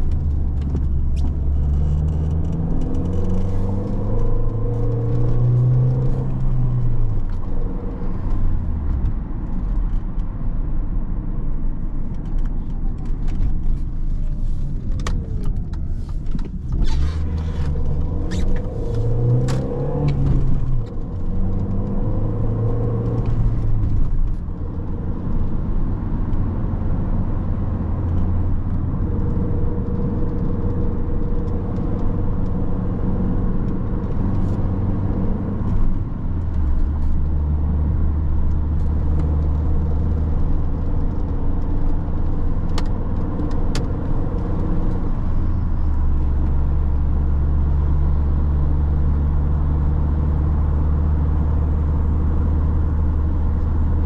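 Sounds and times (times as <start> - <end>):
car engine driving: 0.0 - 54.0
road noise: 0.0 - 54.0.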